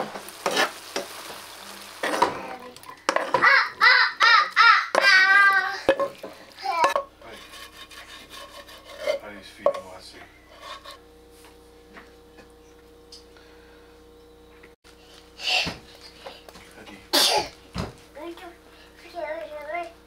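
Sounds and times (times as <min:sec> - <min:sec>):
spatula scraping skillet: 0:00.0 - 0:03.5, 0:05.8 - 0:11.0
meat sizzling in a skillet: 0:00.0 - 0:03.7
utensils and pans clicking: 0:02.0 - 0:03.5, 0:05.8 - 0:10.0.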